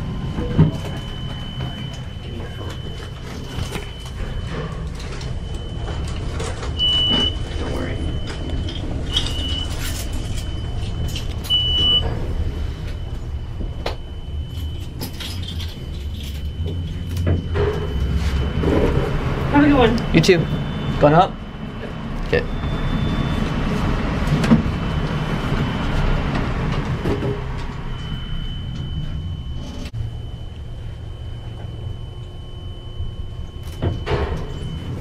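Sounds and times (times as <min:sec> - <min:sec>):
short beeps: 0:00.0 - 0:23.9, 0:24.5 - 0:35.0
elevator ride rumble: 0:00.0 - 0:35.0
thin high whine: 0:00.0 - 0:35.0.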